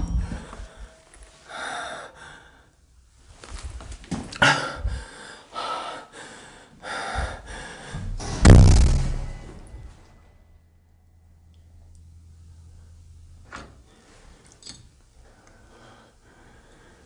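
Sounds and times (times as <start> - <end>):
person breathing: 0.0 - 2.8, 4.5 - 8.2, 15.2 - 17.0
deep bump: 7.3 - 10.6.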